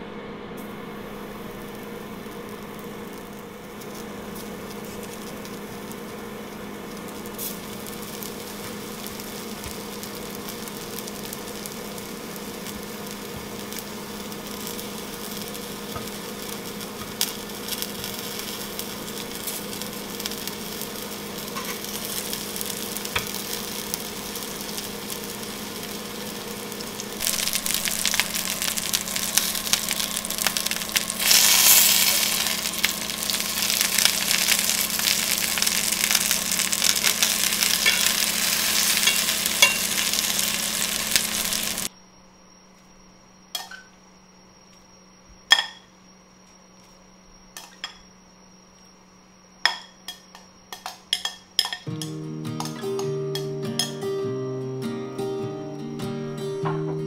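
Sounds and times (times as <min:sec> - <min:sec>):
low hum: 0:00.0 - 0:41.9
meat balls frying in hot oil: 0:01.0 - 0:41.9.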